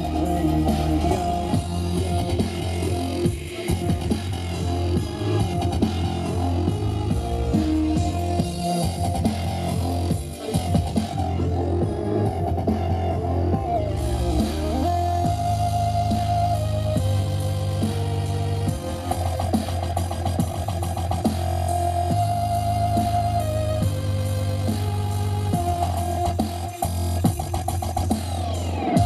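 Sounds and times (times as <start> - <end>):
dubstep music through a stage pa: 0.0 - 29.0.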